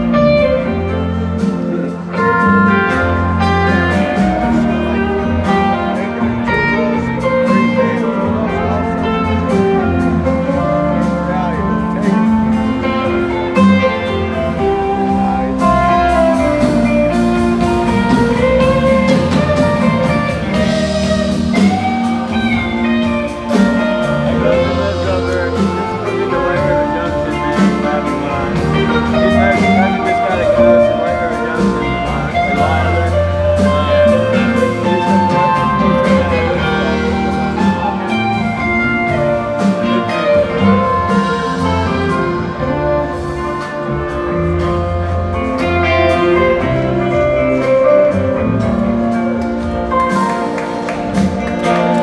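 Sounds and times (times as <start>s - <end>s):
electric guitar lead lines: 0.0s - 52.0s
live rock band playing ballad: 0.0s - 52.0s.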